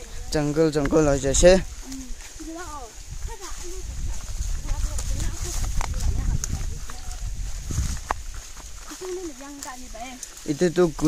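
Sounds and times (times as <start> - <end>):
footsteps through dry leaves: 0.0 - 11.0
low wind rumble: 0.0 - 11.0.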